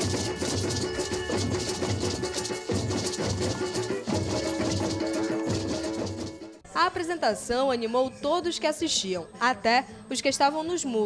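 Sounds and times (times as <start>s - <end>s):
percussion group drums and shakers: 0.0s - 6.6s.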